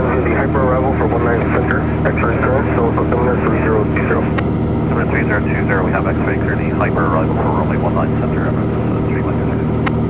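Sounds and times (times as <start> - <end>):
radio speech: 0.0 - 9.8
propeller plane engine droning: 0.0 - 10.0.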